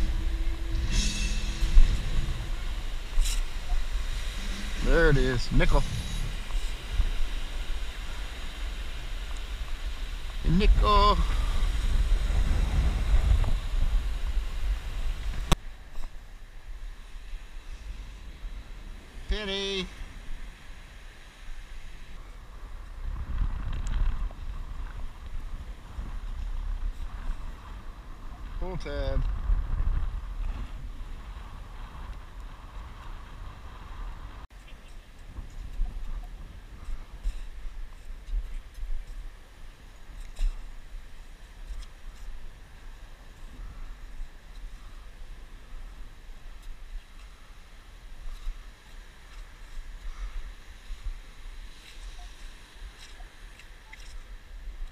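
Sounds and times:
wind rumbling on microphone: 0.0 - 54.9.

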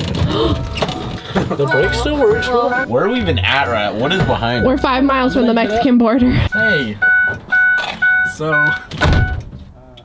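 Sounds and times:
dashboard warning chime beeping: 0.6 - 9.4.

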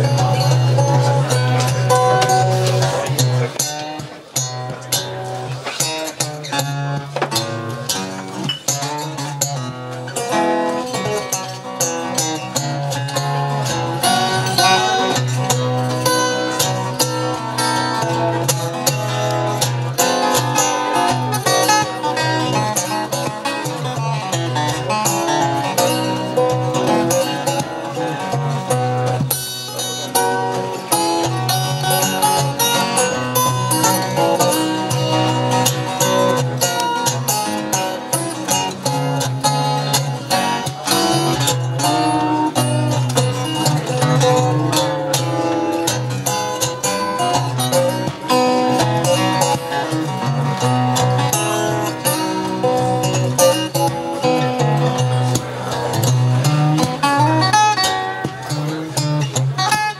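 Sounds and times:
fingerpicked acoustic guitars: 0.0 - 59.9.

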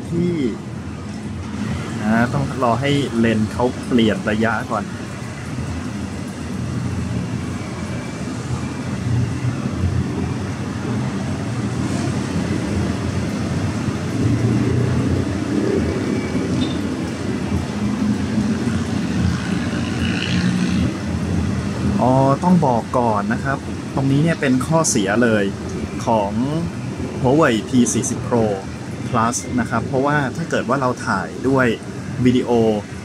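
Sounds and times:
road traffic rumble: 0.0 - 33.0.

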